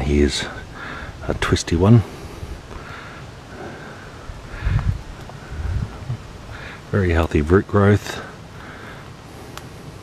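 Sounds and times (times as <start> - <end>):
low thumps: 4.5 - 6.3.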